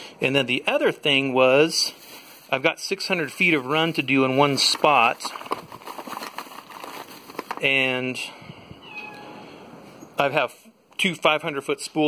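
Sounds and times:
man speaking: 0.2s - 5.4s, 7.6s - 8.4s, 10.2s - 12.0s
cat meowing faintly: 8.7s - 9.4s.

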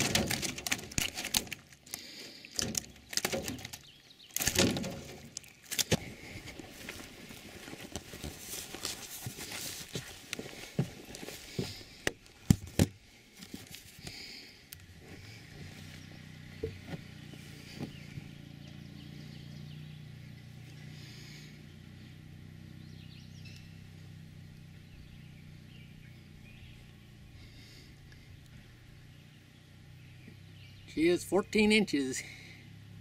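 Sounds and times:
camera handling knocks and bumps: 10.8s - 13.6s.

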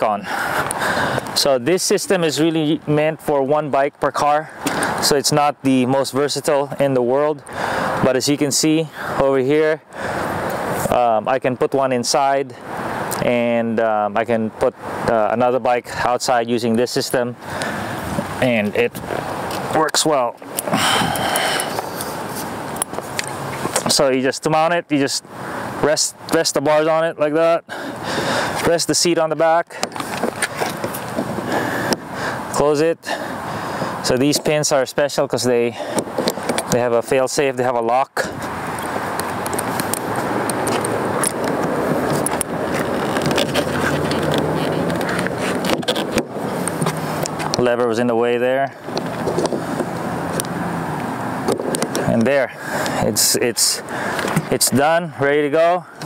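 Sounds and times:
rustling and scraping handling: 18.0s - 23.9s, 29.8s - 32.1s, 38.4s - 48.0s, 48.8s - 50.6s
steady rushing noise: 26.8s - 56.0s
light clicks and scrapes: 38.4s - 47.6s.

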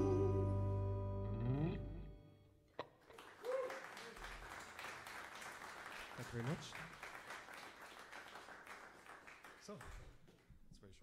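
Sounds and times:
audience applause: 3.1s - 10.4s
audience cheer: 3.2s - 4.6s.

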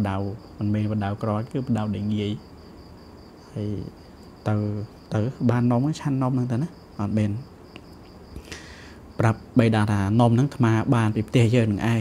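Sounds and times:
man reading aloud: 0.0s - 2.5s, 3.4s - 7.6s, 9.2s - 12.0s
faint steady high trill: 0.0s - 12.0s.

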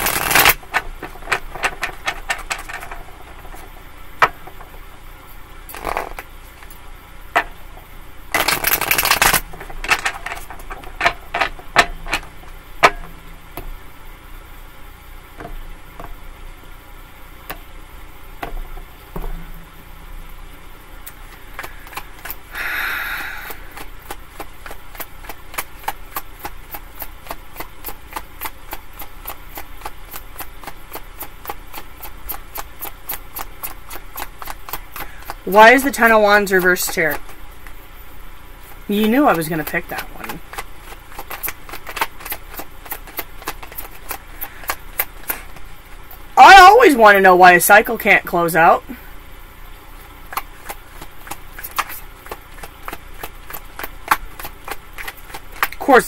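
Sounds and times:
cards shuffling and clicking: 0.0s - 4.8s, 5.7s - 6.8s, 8.3s - 13.0s, 21.1s - 22.5s, 23.4s - 37.8s, 39.0s - 46.2s, 50.3s - 56.0s
rush of cards: 8.4s - 9.4s.

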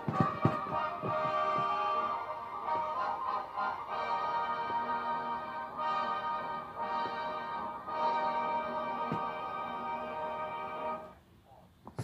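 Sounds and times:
sustained chord from television: 0.0s - 11.4s.

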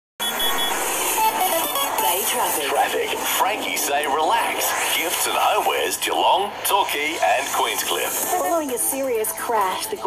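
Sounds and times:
quick high beeps: 0.2s - 1.9s
radio jingle music sting: 0.2s - 10.0s.

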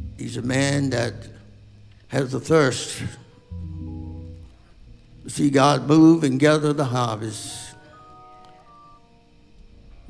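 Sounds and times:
soft sustained instrument notes: 0.0s - 10.0s.

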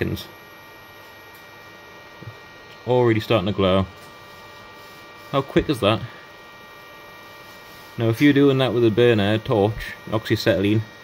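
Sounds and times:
faint high steady tones: 0.0s - 11.0s
induction heater electrical hum: 0.0s - 11.0s.

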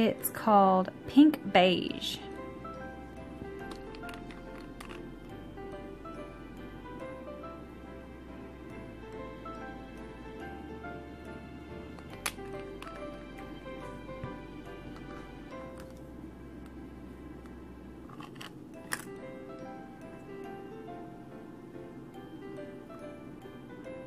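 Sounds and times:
soft background music: 0.0s - 24.0s.

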